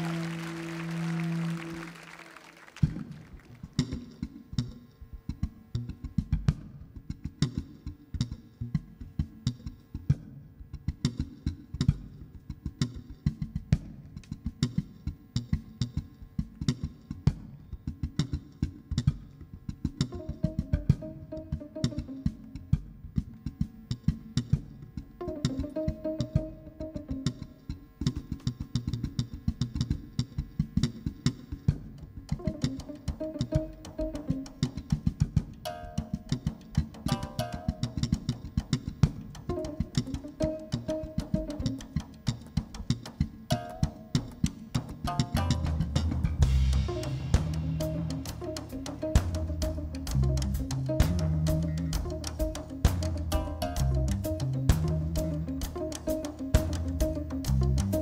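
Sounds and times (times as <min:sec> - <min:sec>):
drum kit groove: 0:16.0 - 0:58.0
electric bass plucked: 0:19.8 - 0:23.4, 0:24.4 - 0:29.2, 0:32.3 - 0:58.0.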